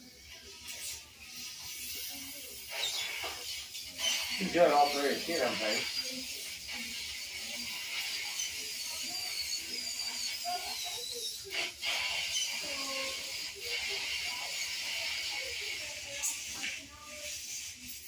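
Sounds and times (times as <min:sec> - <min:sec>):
dental handpiece whine: 0:00.0 - 0:18.0
faint muffled talk: 0:00.0 - 0:18.0
suction hiss: 0:00.0 - 0:18.0.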